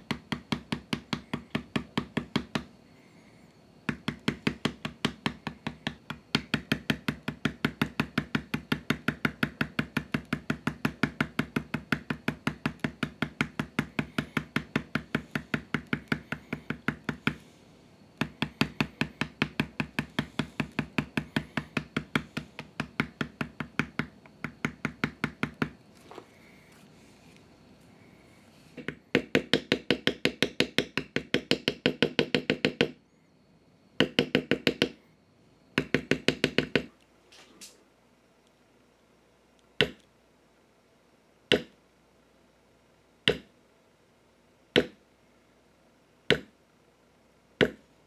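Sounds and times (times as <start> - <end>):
mallet tapping leather stamp: 0.0 - 2.7, 3.9 - 17.4, 18.2 - 25.8, 28.8 - 33.0, 34.0 - 35.0, 35.8 - 36.9, 39.8 - 40.1, 41.5 - 41.8, 43.3 - 43.5, 44.8 - 45.0, 46.3 - 46.6, 47.6 - 47.8.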